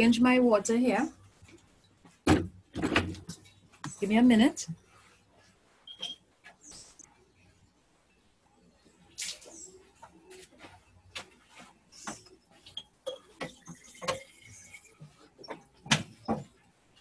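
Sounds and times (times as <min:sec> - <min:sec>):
objects knocking and clattering: 0:02.1 - 0:04.0, 0:12.0 - 0:16.6.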